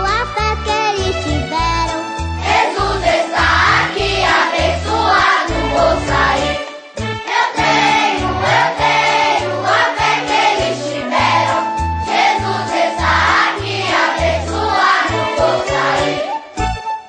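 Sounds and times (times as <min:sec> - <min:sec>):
instrumental backing track: 0:00.0 - 0:17.0
children's choir singing: 0:02.4 - 0:06.6, 0:07.2 - 0:16.4.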